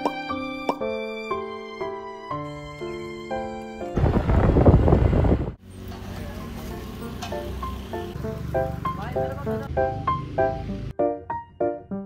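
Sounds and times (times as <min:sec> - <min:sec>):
wind buffeting microphone: 0:03.9 - 0:05.6.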